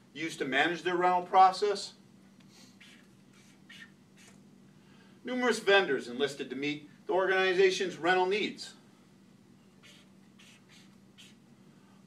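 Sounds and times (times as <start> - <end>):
marker scratching on paper: 2.8 - 4.4, 9.8 - 11.4.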